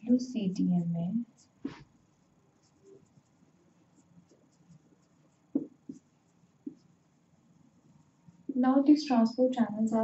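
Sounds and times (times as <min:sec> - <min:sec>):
marker pen on whiteboard: 0:00.0 - 0:10.0.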